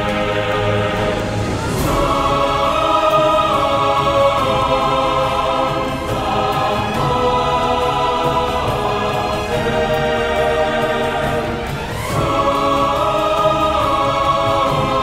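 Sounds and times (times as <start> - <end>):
choir singing held chords: 0.0 - 15.0
orchestral accompaniment: 0.0 - 15.0.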